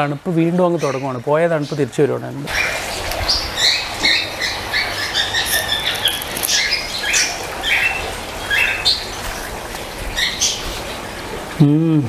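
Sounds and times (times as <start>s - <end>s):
small birds chirping: 0.7s - 10.7s.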